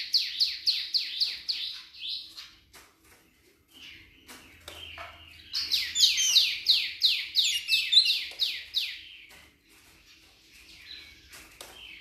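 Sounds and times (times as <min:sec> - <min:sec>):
songbird singing high notes: 0:05.8 - 0:08.3.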